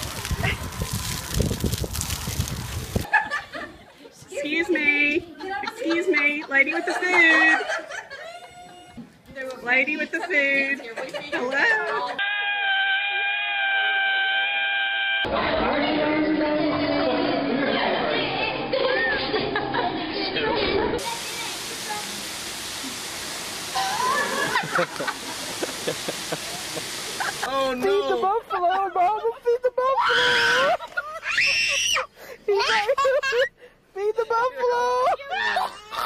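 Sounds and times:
woman laughing: 5.3 - 9.0, 23.8 - 27.5, 30.4 - 31.8, 32.5 - 33.6
woman shrieking: 12.2 - 15.3, 23.8 - 24.5, 30.0 - 32.1, 35.2 - 36.0.

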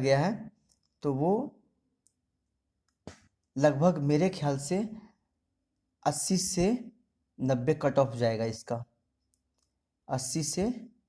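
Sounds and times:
man speaking: 0.0 - 1.6, 3.6 - 5.0, 6.0 - 8.9, 10.1 - 10.9.

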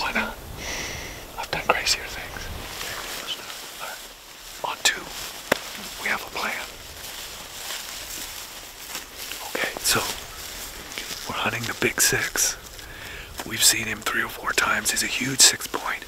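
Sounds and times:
soft low-voiced speech: 0.0 - 0.4, 1.3 - 4.0, 9.4 - 10.3, 11.2 - 12.6, 13.4 - 16.0.

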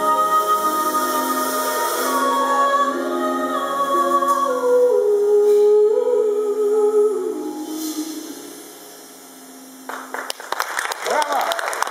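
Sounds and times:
audience applauding: 9.9 - 11.9.

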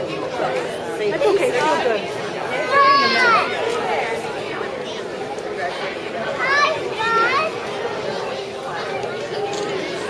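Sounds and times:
babble of young children: 2.5 - 3.9, 6.2 - 8.3.

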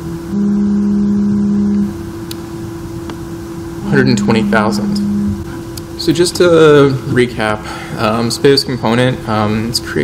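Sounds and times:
low electrical hum: 0.0 - 10.0
man humming in hesitation: 0.4 - 2.0, 3.8 - 5.6.

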